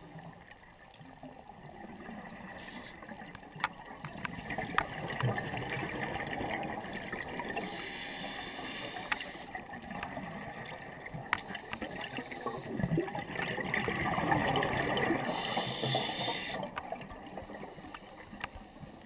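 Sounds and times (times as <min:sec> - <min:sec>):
underwater bubbles gurgling: 0:00.0 - 0:19.0.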